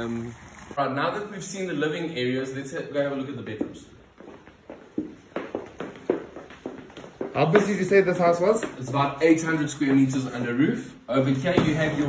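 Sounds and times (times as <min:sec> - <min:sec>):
footsteps on wooden floor: 0:03.6 - 0:10.4.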